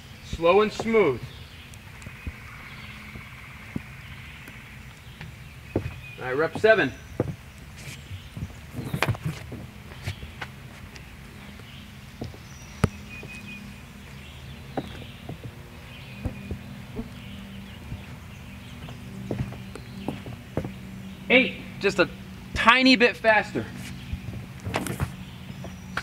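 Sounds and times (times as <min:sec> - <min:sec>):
footsteps on wooden deck: 0:00.3 - 0:26.0.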